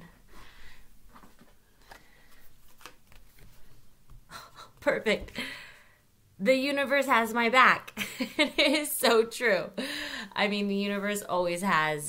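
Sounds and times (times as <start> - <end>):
playing cards rustling: 1.1 - 4.2.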